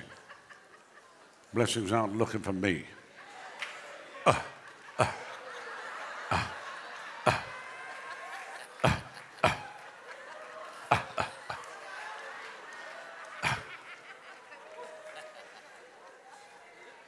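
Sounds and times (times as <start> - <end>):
crowd laughing and chuckling: 0.0 - 1.5, 3.0 - 17.0.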